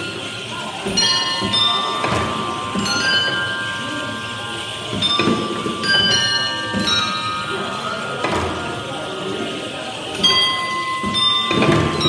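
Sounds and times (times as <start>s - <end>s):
ringing bell-like metal tones: 0.0s - 12.0s.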